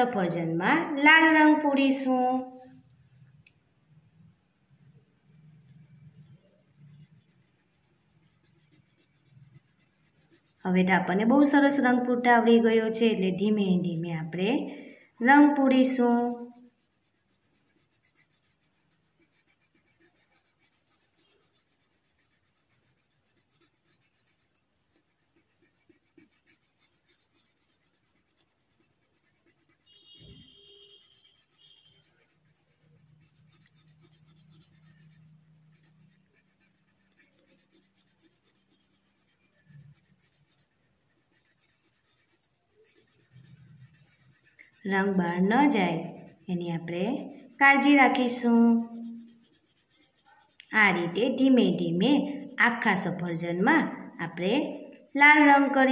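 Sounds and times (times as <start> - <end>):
coloring strokes on paper: 0.0 - 55.9.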